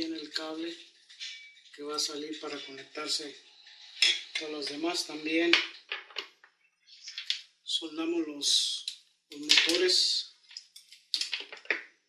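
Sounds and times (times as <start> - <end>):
man speaking: 0.0 - 0.8, 1.8 - 3.4, 4.4 - 5.7, 7.7 - 10.3.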